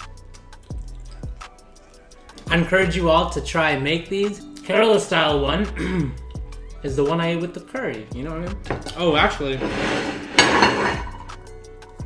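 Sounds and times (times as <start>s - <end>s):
background music: 0.0s - 12.0s
plate scraping on table: 9.5s - 11.4s
ceramic plate clinking on table: 9.6s - 11.3s.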